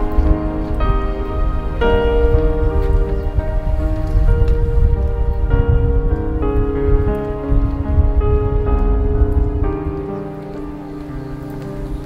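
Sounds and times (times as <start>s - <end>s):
low rumbling noise: 0.0s - 12.0s
music of held notes: 0.0s - 12.0s.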